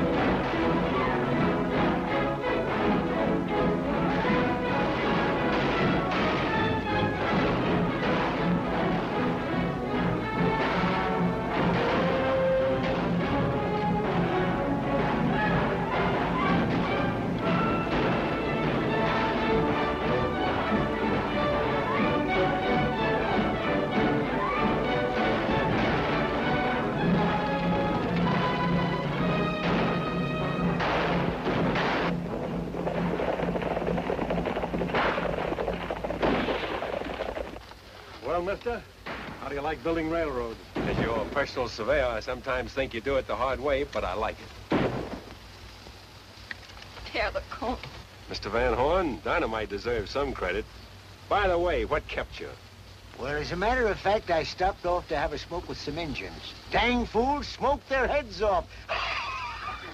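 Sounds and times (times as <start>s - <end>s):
orchestral film music: 0.0s - 35.8s
sudden bangs: 4.1s - 9.5s, 10.5s - 13.8s, 14.8s - 22.9s, 24.8s - 37.7s, 39.0s - 41.7s, 44.7s - 45.4s.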